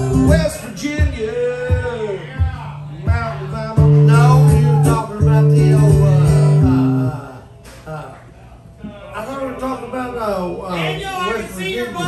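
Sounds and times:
man singing: 0.0 - 7.3
acoustic guitar playing: 0.0 - 7.4.

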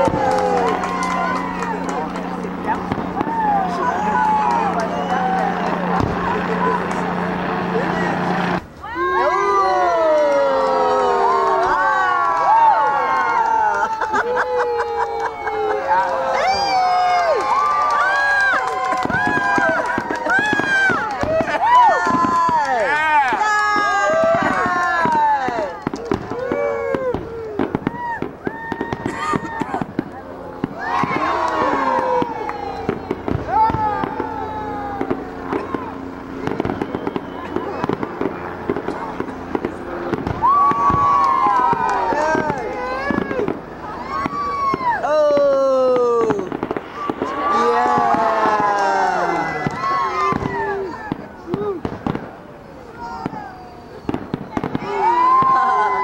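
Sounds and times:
crowd voices: 0.0 - 56.0
fireworks bangs and crackles: 0.0 - 56.0.

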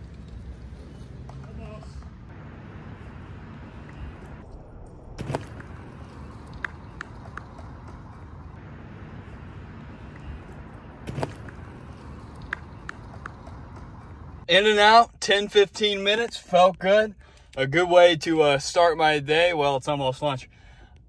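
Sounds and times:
low outdoor rumble: 0.0 - 15.4
bike landing thumps: 5.2 - 8.1, 11.0 - 13.9.

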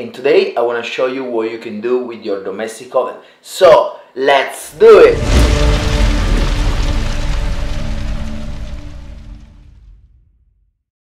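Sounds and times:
dense rumbling noise: 4.7 - 10.7.

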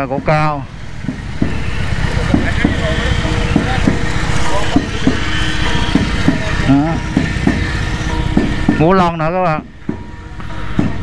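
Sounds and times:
motorcycle engine rumbling: 0.0 - 11.0.

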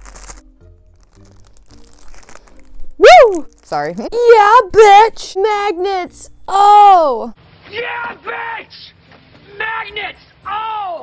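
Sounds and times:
packaging crinkling and rustling: 0.0 - 4.0.

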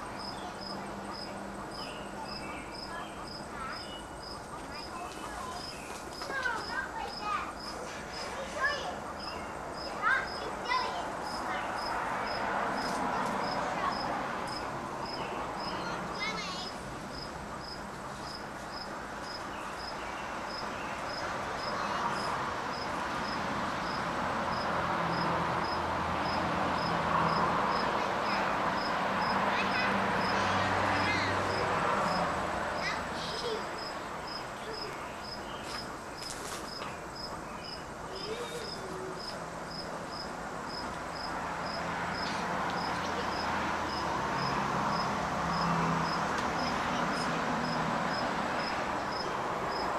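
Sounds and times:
outdoor hiss: 2.9 - 24.5
insect chirping: 32.8 - 46.7, 47.6 - 49.9.

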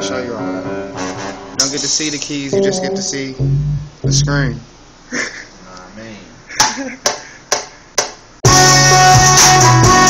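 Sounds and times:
beat with heavy bass and melody: 2.6 - 4.7.

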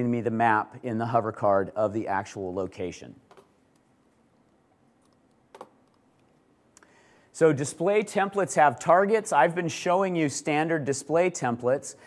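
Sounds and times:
laptop click: 5.1 - 6.0.

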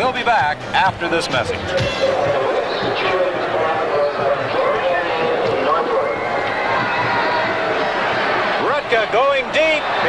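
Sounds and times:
stadium crowd voices: 0.0 - 10.0.

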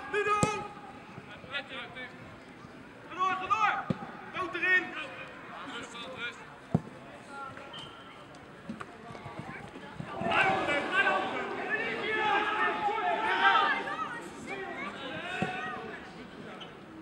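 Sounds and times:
football players shouting: 10.1 - 16.0.

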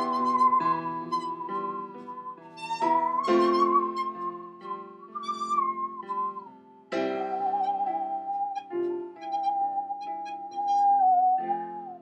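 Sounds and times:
musical saw wavering note: 0.0 - 12.0
piano chords: 0.0 - 12.0.

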